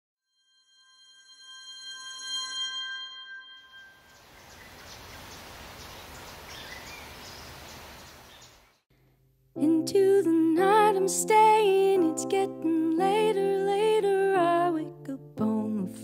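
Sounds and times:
static hiss with crackles: 4.2s - 8.7s.

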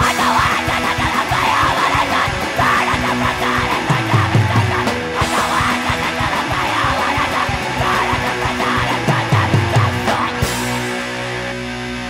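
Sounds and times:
distorted electric guitar: 0.0s - 12.0s
drums: 0.0s - 12.0s.

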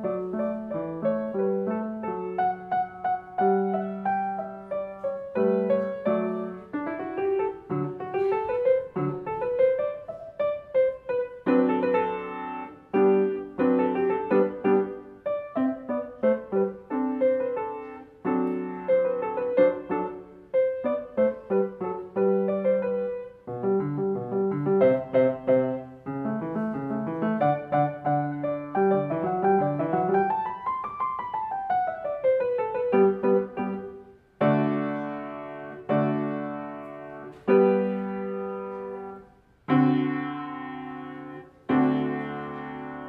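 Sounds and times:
grand piano piece: 0.0s - 43.0s.

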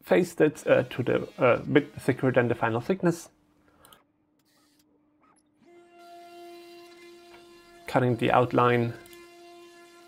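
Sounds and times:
router spindle whining: 0.6s - 2.9s, 5.6s - 10.0s.

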